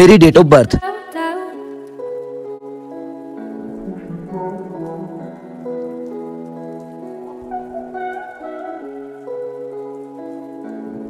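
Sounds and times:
soft held chords music: 0.0 - 11.0
faint rain-like patter: 1.4 - 11.0.

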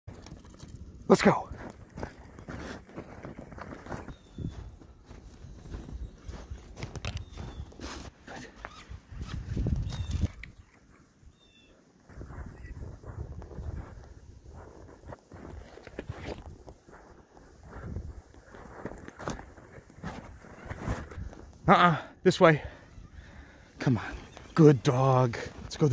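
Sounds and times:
footsteps crunching through snow: 1.2 - 10.3, 12.0 - 21.7, 23.3 - 25.9
rustling and handling noise: 13.4 - 21.6.

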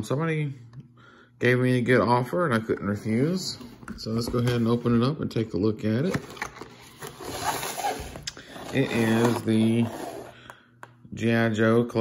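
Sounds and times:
plastic sleeve scraping cardboard: 7.0 - 10.3.

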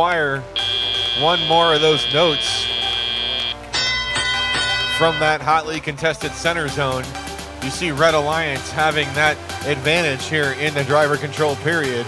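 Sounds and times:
steady high electronic tone: 0.6 - 5.7
bright bell-like chime: 3.7 - 5.4.

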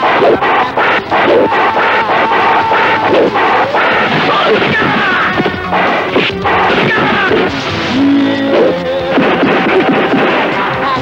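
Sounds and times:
blows landing: 0.0 - 11.0.

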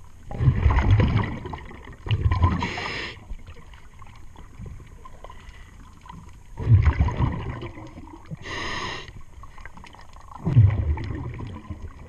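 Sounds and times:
exhaled bubbles rumbling: 0.0 - 12.0.

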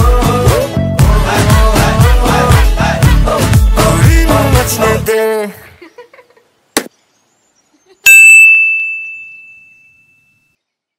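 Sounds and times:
notification bell ding: 8.1 - 10.2.

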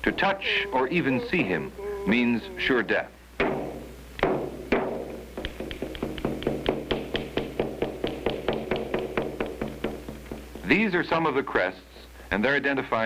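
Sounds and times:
drum strikes: 3.4 - 11.0.

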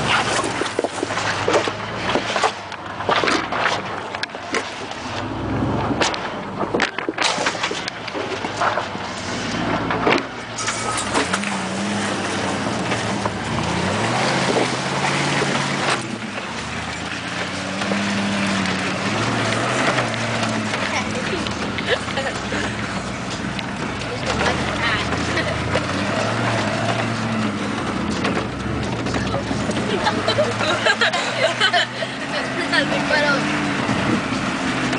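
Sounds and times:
mud and water splashing: 0.0 - 34.9
truck engine revving: 0.0 - 34.9.

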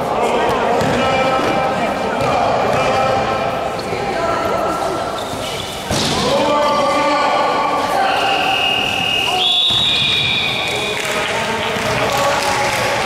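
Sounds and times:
voices chattering and shouting: 0.0 - 13.0.

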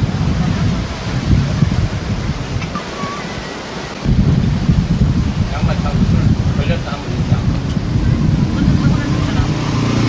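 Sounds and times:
sea surf washing: 0.0 - 10.0
wind: 0.0 - 10.0.

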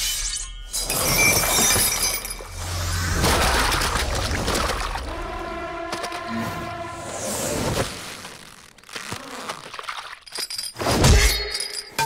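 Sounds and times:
glass shattering and clinking: 0.1 - 2.6, 9.9 - 12.0.

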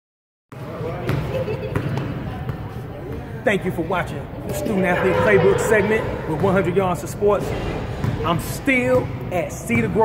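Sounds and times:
basketball bouncing on gym floor: 0.6 - 2.6
murmur of voices: 0.6 - 10.0.

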